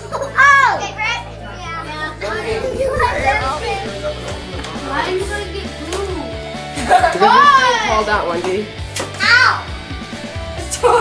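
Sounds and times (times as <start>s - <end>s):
young children chattering: 0.0s - 8.2s.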